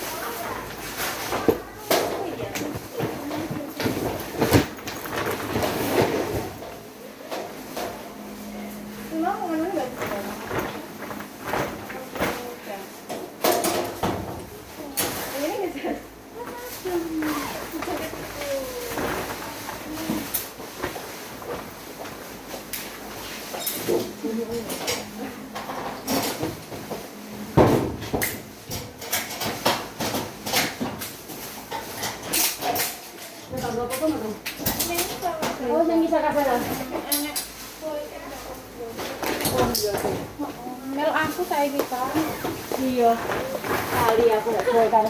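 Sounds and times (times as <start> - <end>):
luggage knocking and rustling: 2.6 - 6.8
indistinct voices: 14.5 - 20.5.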